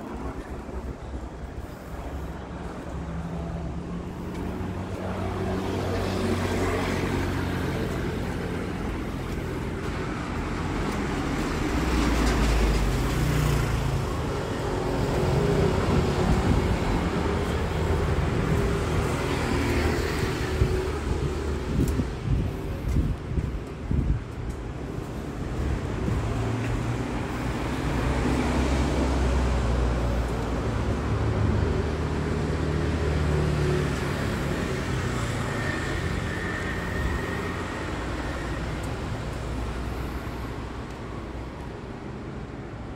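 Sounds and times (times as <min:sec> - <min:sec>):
road traffic rumble: 0:00.0 - 0:42.9.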